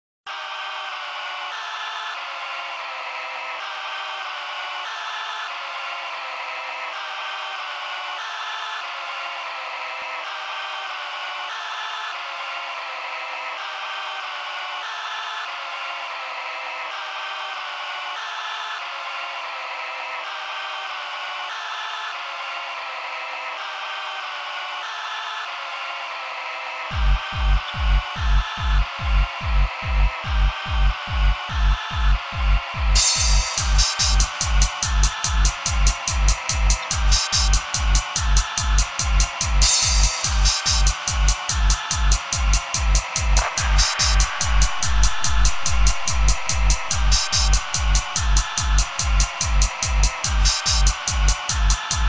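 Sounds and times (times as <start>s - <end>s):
buzzy electronic tone: 33.0s - 52.0s.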